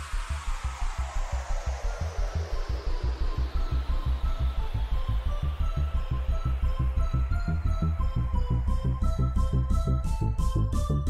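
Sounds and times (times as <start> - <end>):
falling noise sweep: 0.0 - 11.0
fast pounding bass pulses: 0.0 - 11.0.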